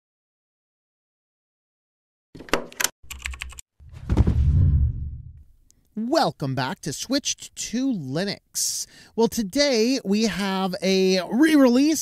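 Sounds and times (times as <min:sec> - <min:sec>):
rapid keyboard key clicks: 0:02.7 - 0:03.6
deep loud sound: 0:03.8 - 0:05.4.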